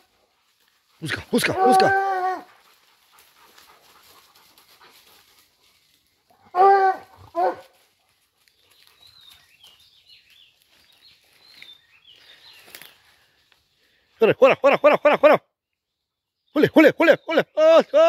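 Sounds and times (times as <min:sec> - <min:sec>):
rustling of dry leaves: 0:00.0 - 0:14.1.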